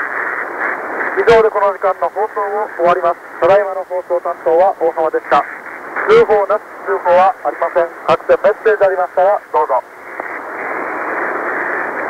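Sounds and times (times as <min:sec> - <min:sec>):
shortwave radio static hiss: 0:00.0 - 0:12.0.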